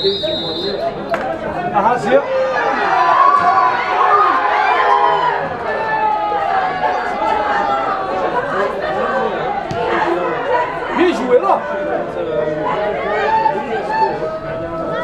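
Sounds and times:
people talking and calling out: 0.0s - 15.0s
loud shout: 2.0s - 8.8s.

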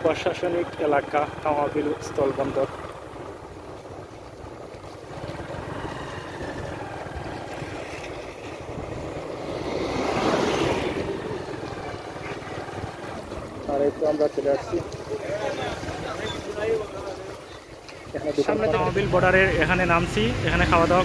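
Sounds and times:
motorcycle engine rumble: 0.0s - 21.0s
wind on microphone: 2.9s - 18.4s.

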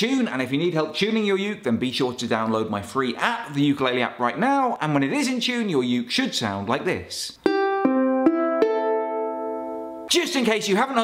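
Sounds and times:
ukulele strings plucked: 7.4s - 10.1s.

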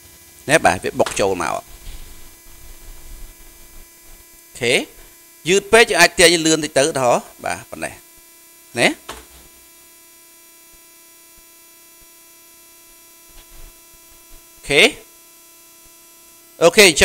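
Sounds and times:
electrical hum: 0.0s - 17.0s.

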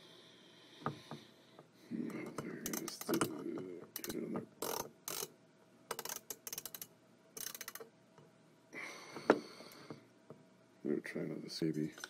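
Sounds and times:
ratcheting screwdriver clicking: 4.0s - 5.3s, 5.9s - 7.8s.

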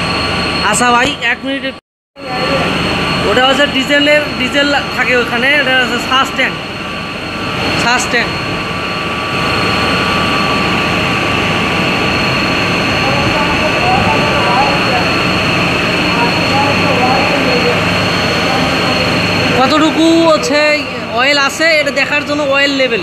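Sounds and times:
boiler machinery roar: 0.0s - 23.0s
high whine: 0.0s - 23.0s.

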